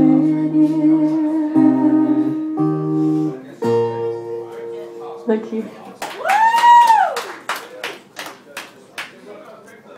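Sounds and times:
crowd cheering: 6.0 - 8.2
audience applauding: 6.0 - 9.3.

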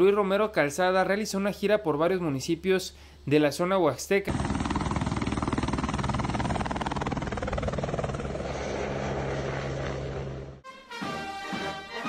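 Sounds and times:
helicopter engine drone: 4.3 - 10.6
helicopter rotor chopping: 4.3 - 10.6.

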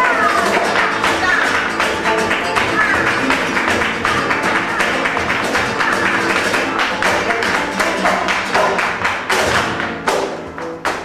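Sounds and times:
sharp percussive strikes: 0.0 - 11.0.

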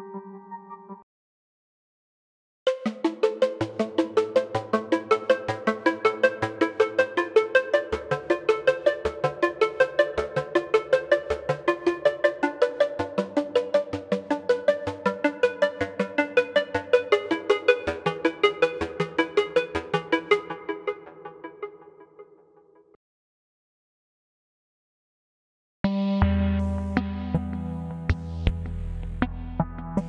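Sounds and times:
synthesizer arpeggio: 2.8 - 22.4.

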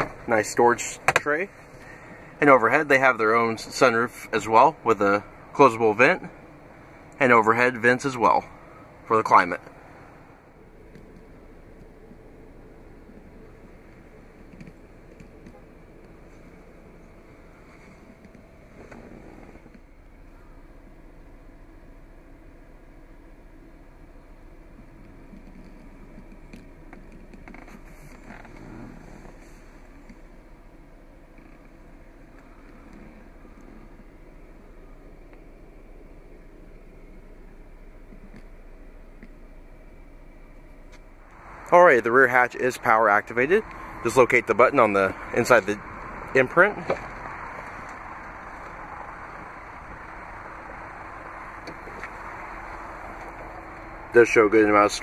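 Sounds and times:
faint motor hum: 0.0 - 55.0
outdoor background noise: 0.0 - 55.0
vehicle cabin rumble and hiss: 0.0 - 55.0
faint rustles and clicks: 24.8 - 30.5.

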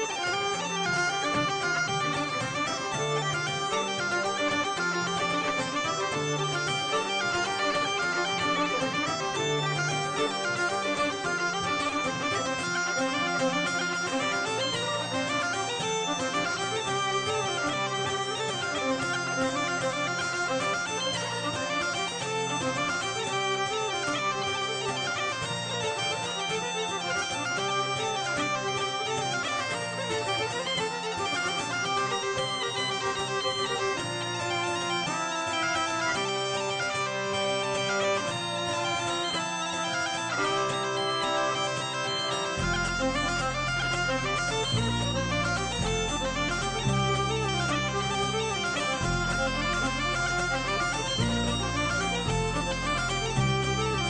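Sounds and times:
bagpipe melody with drone: 0.0 - 54.0.

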